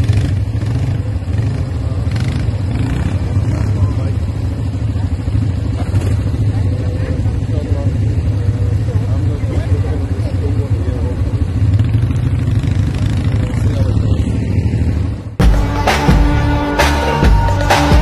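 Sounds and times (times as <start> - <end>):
quad bike engine running: 0.0 - 15.4.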